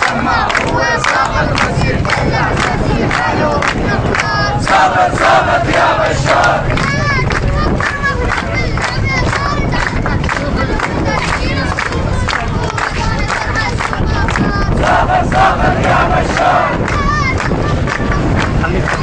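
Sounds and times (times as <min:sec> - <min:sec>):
crowd shouting slogans: 0:00.0 - 0:09.6, 0:10.2 - 0:19.0.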